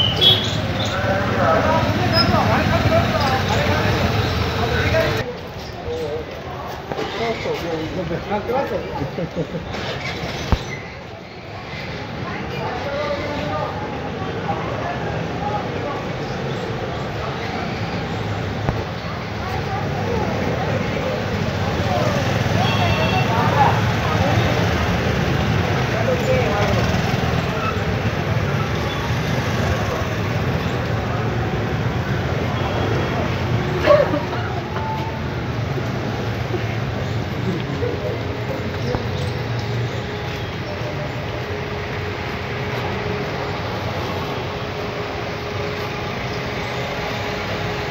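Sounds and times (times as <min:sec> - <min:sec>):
indistinct voices: 0:00.0 - 0:47.9
scooter engines passing: 0:00.0 - 0:47.9
street noise: 0:00.0 - 0:47.9.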